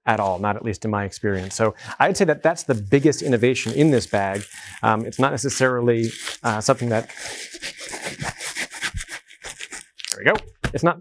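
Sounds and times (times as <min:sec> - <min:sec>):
fabric bag rustling and rubbing: 0:02.4 - 0:09.9.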